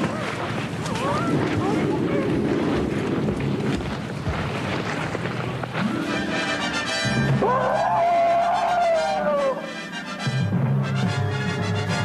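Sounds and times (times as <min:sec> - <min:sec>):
loud rushing wind noise: 0:00.0 - 0:07.4
voices crying out: 0:07.4 - 0:09.7.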